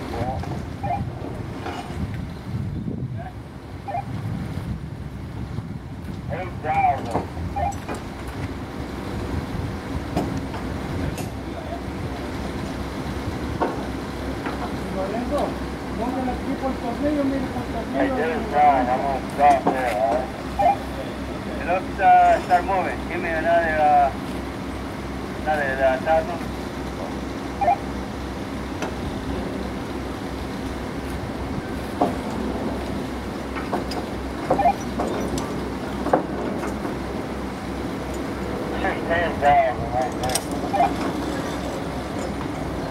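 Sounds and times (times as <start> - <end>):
crane engine rumbling: 0.0 - 42.9
tool clanking on steel: 33.5 - 36.9.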